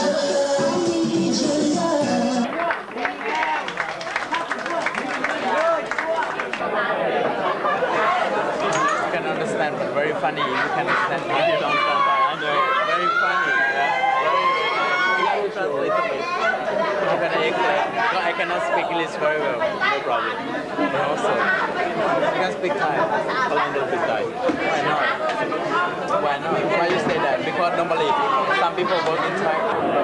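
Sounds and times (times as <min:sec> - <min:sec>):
crowd chatter: 0:00.0 - 0:30.0.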